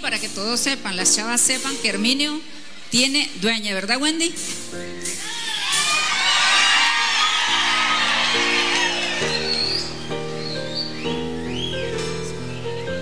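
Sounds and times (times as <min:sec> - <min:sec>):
crowd cheering and whooping: 0:05.2 - 0:11.7
instrumental music: 0:07.0 - 0:13.0.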